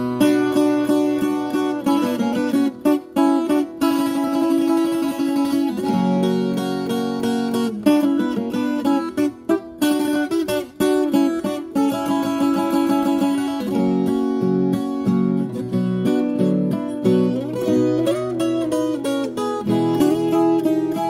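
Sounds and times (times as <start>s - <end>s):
picked steel string guitar: 0.0s - 21.0s.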